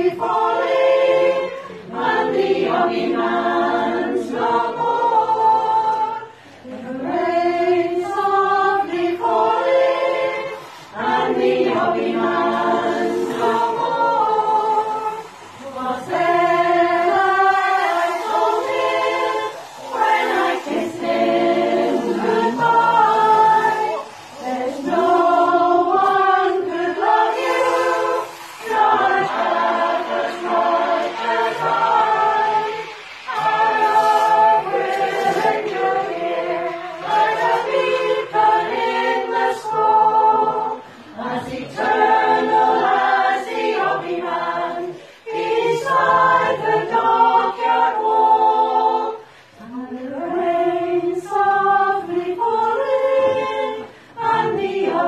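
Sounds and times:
women's choir singing a cappella: 0.0 - 55.0.

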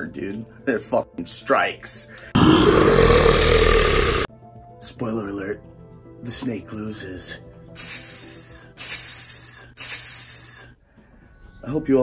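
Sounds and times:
loud rough blast: 2.4 - 4.3.

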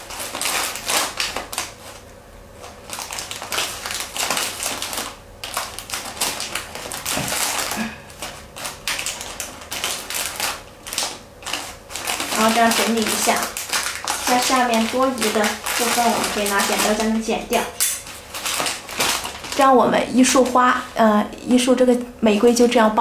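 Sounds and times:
plastic wrap and paper crinkling: 0.0 - 23.0.

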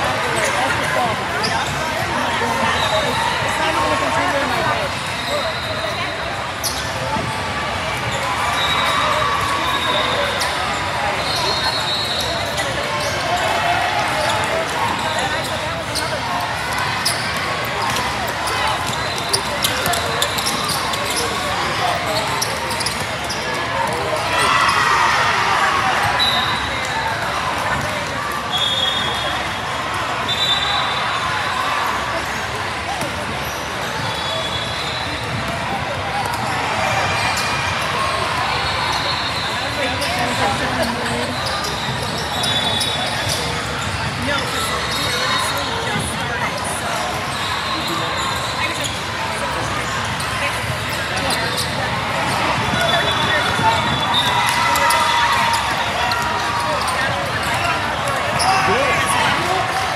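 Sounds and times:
chatter of voices in a hall: 0.0 - 59.9
sneakers squeaking: 0.0 - 59.9.

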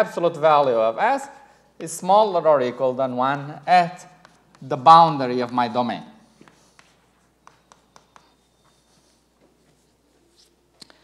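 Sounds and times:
chalk tapping on blackboard: 4.1 - 4.8, 6.3 - 9.1.

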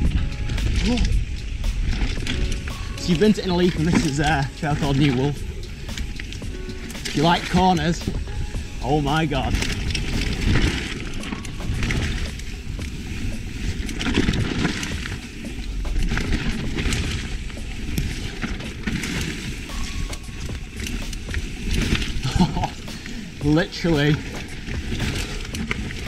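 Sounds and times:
bike chain clicks and rattles: 0.0 - 26.0
bike tyres on dirt: 0.0 - 26.0
wind rushing over microphone: 0.0 - 26.0.

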